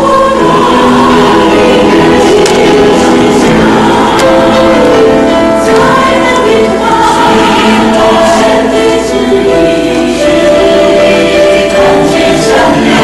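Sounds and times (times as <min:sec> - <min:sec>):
church choir singing: 0:00.0 - 0:13.0.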